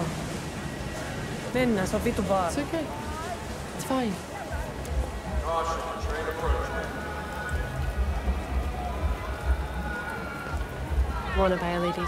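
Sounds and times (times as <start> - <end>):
rain on street: 0.0 - 12.0.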